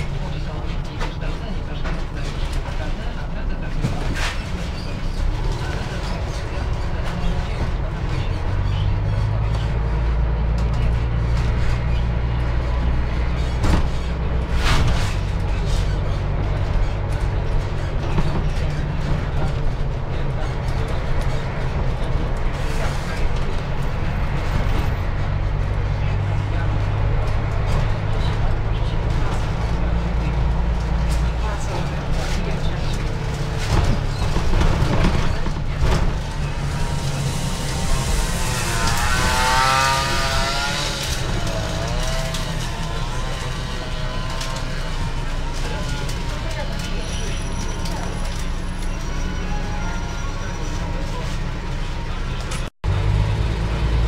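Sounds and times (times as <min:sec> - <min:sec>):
bus engine drone: 0:00.0 - 0:54.0.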